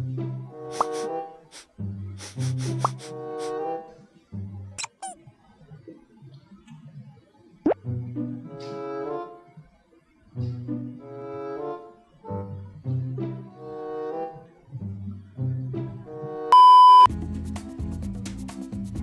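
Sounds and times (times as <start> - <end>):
low bowed strings music: 0.0 - 4.8, 7.8 - 9.4, 10.4 - 16.5
music with steady beat: 0.7 - 1.1, 2.2 - 3.6, 17.0 - 19.0
loud high beep: 16.5 - 17.1.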